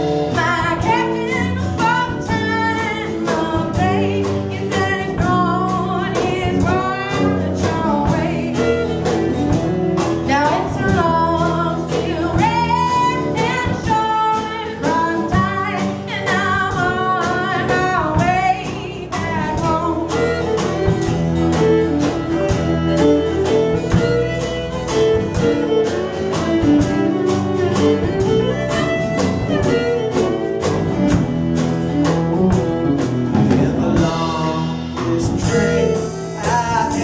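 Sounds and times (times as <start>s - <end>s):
acoustic guitar: 0.0s - 37.0s
drum kit beat: 0.0s - 37.0s
electric bass: 0.0s - 37.0s
live band playing a song: 0.0s - 37.0s
person singing: 0.3s - 9.6s, 33.3s - 37.0s.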